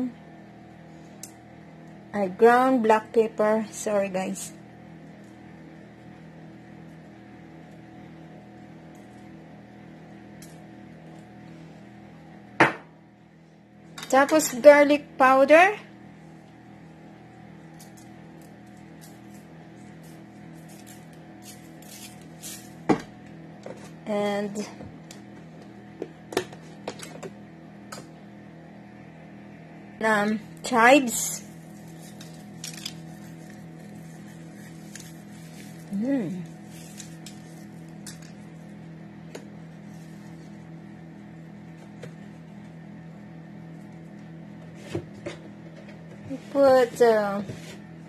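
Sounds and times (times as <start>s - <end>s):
kitchen appliance hum: 0.0s - 48.0s.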